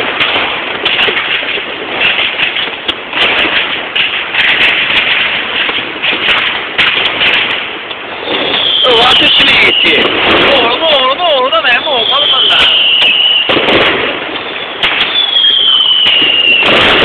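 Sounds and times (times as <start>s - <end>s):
fireworks banging and crackling: 0.0s - 17.0s
falling firework whistle: 8.1s - 17.0s.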